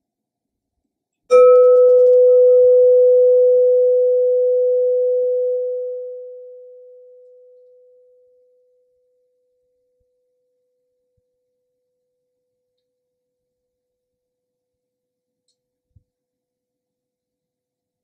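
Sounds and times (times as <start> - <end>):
crystal singing bowl ringing: 1.3 - 8.4.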